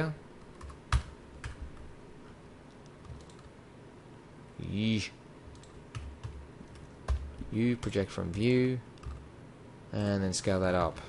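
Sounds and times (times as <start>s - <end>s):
keyboard keys clicking: 2.8s - 3.5s, 5.5s - 9.2s.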